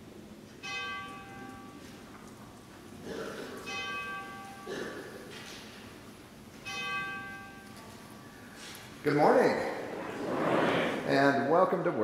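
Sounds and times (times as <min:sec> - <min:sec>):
bell-like chime ringing: 0:00.6 - 0:01.8, 0:06.6 - 0:07.7.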